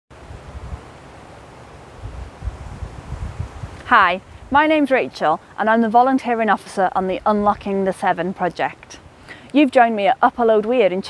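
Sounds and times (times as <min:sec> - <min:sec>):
faint steady hiss: 0:00.1 - 0:11.0
wind buffeting microphone: 0:00.2 - 0:01.0, 0:01.9 - 0:05.8.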